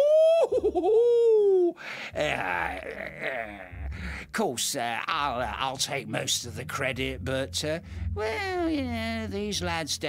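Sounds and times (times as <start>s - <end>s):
man making ghostly wooo: 0.0s - 4.0s
man chuckling: 0.2s - 4.1s.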